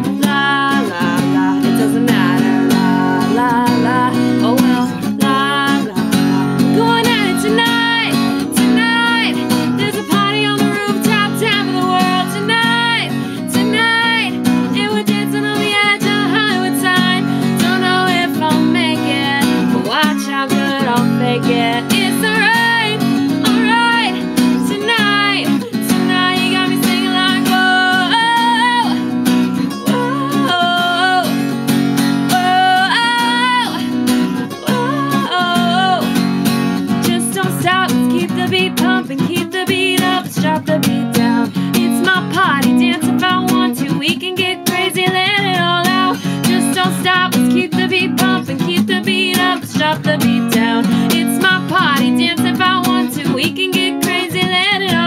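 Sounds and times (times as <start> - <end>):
acoustic guitar strumming: 0.0 - 55.0
woman singing: 0.0 - 55.0.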